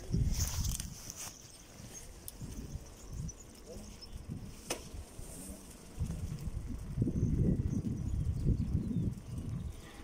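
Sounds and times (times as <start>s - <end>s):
bicycle rolling over paving stones: 0.0s - 10.0s.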